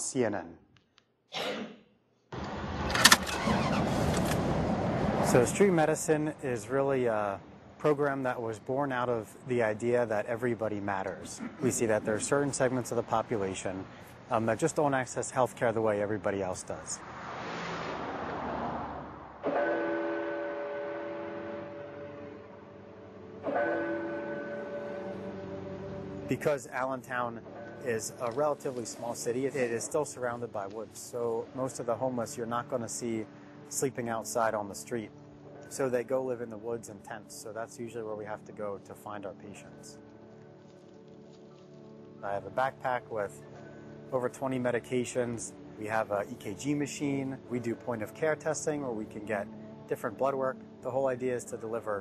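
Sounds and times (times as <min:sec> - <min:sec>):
car engine starting and running: 0:02.4 - 0:05.5.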